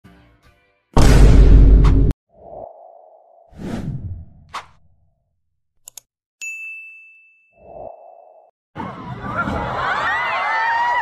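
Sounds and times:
loud hit: 0:01.0 - 0:02.1.

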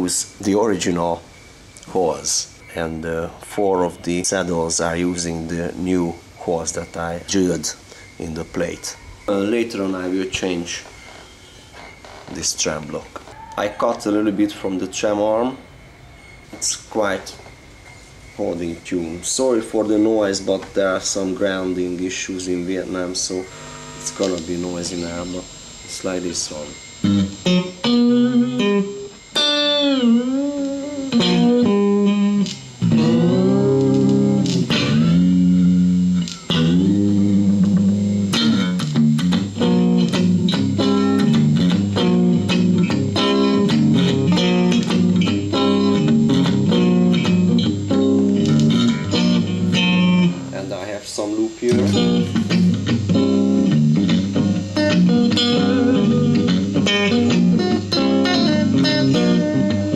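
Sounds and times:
electrical hum: 0:00.0 - 0:59.9
electric guitar through amplifier: 0:18.9 - 0:59.9.

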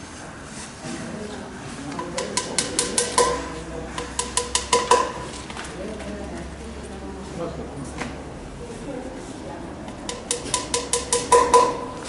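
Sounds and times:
hammer tapping with ringing tone: 0:02.0 - 0:05.5, 0:10.1 - 0:12.0.

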